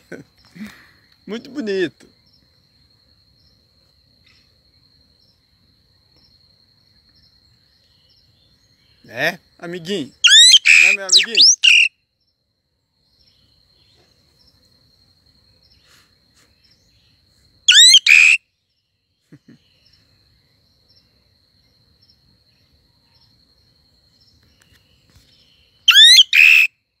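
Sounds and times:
songbird whistling song: 10.2s - 11.9s, 17.7s - 18.4s, 24.4s - 26.7s.

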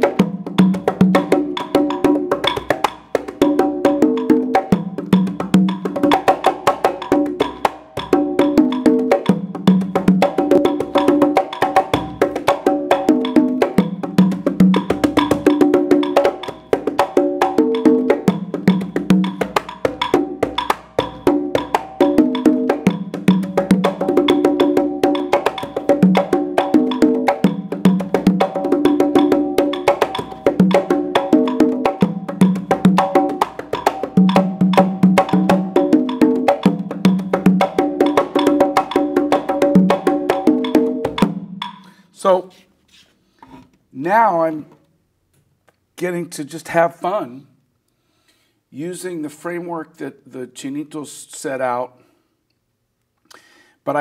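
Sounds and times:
conga drums rhythm: 0.0s - 42.0s.

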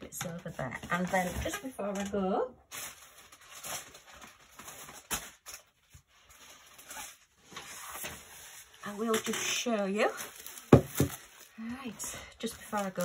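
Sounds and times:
plastic packaging rustling: 2.7s - 13.0s.

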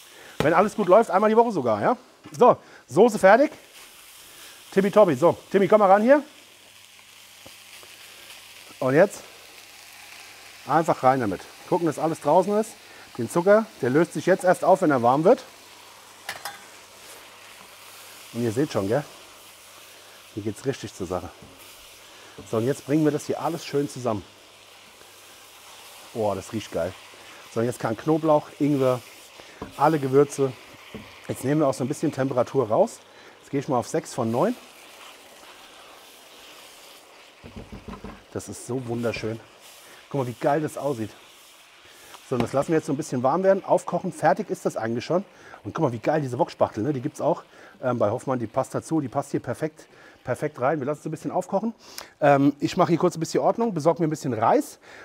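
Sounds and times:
food sizzling in a pan: 0.0s - 54.8s.

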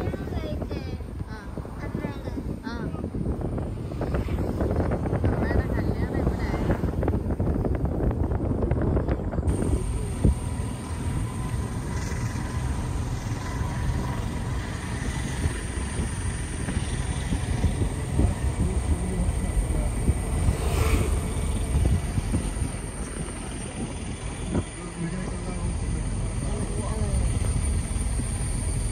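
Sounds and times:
car road and engine rumble: 0.0s - 28.9s.

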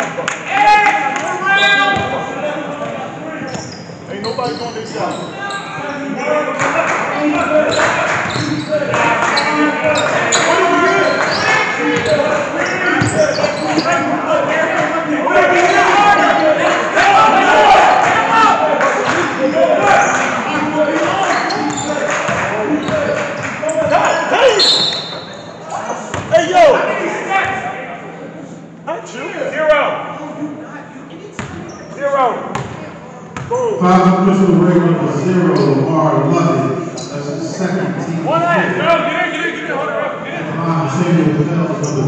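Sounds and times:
players and spectators shouting: 0.4s - 3.5s, 5.0s - 27.8s.

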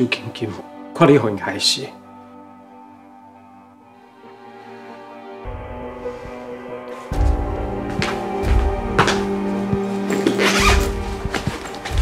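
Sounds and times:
background music with drone: 0.0s - 12.0s
backpack zipper opening: 10.2s - 11.9s.

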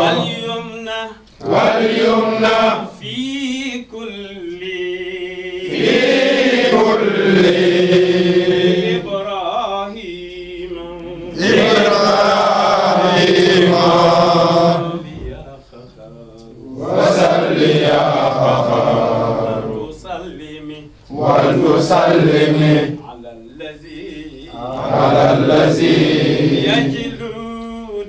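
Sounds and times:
men chanting in unison: 0.0s - 15.4s, 16.6s - 28.0s.

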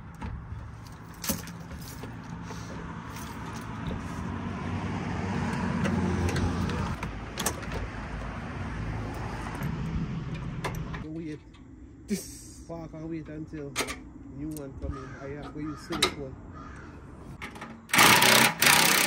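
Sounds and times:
vehicle passing by: 1.8s - 10.9s.

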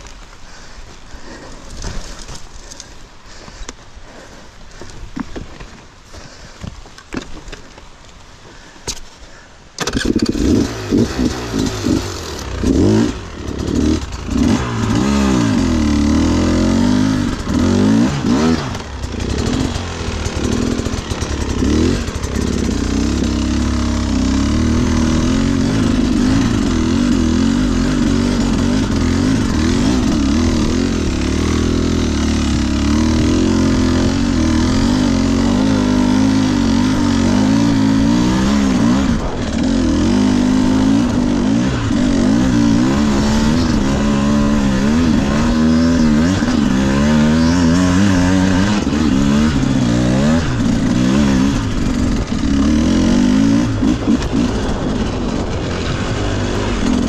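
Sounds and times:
dirt bike engine revving: 9.8s - 57.0s.

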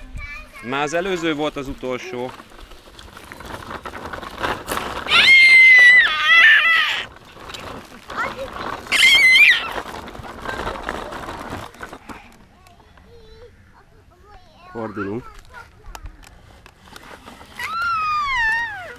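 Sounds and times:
baby walker wheels rattling: 0.7s - 12.4s, 16.2s - 18.9s
baby shrieking: 5.1s - 7.1s, 8.9s - 9.8s, 17.6s - 18.9s.

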